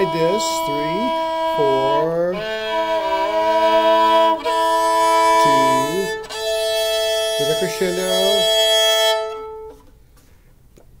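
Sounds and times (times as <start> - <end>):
violin bowed note: 0.0 - 9.9.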